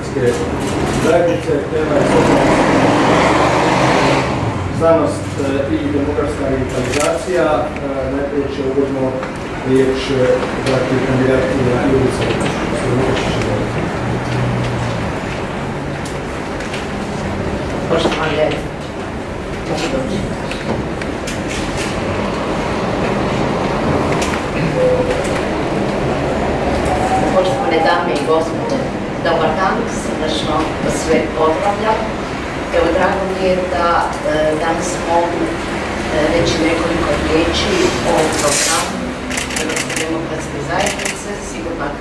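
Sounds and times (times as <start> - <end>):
rumbling background noise: 0.0 - 42.0
steady rushing noise: 7.3 - 40.6.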